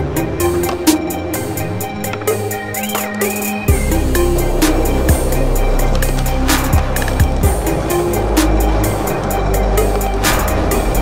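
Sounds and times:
instrumental music with drum beat: 0.0s - 11.0s.

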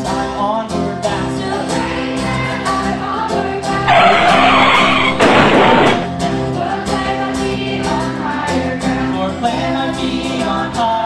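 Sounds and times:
background music: 0.0s - 11.0s
harsh noisy sweep: 3.9s - 6.2s
rush of noise: 4.1s - 6.1s.

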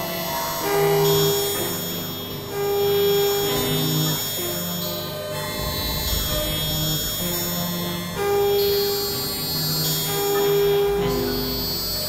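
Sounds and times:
low rumble: 5.4s - 9.2s.

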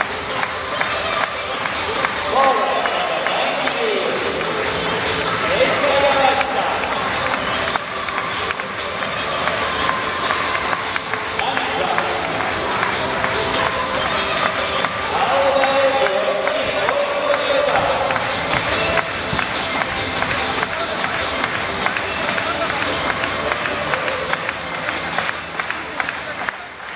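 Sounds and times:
crowd noise: 0.0s - 26.9s
stadium music over loudspeakers: 0.0s - 26.9s
announcer speaking: 2.2s - 4.6s, 5.4s - 7.1s, 11.3s - 12.4s, 15.0s - 18.5s.

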